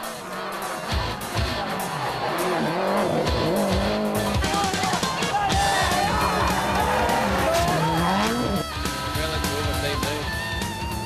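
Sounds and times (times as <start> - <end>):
music playing: 0.0 - 11.0
rally car driven at speed: 0.0 - 11.0.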